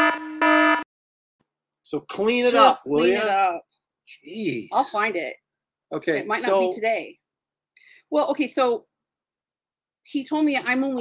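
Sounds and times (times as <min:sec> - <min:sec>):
electronic buzzer alarm: 0:00.0 - 0:00.9
person speaking: 0:02.0 - 0:05.0, 0:06.0 - 0:07.0.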